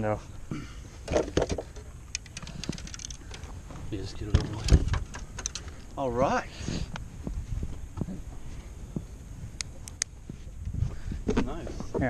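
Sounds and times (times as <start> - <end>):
handling clicks and knocks: 1.1 - 3.6, 4.2 - 5.8.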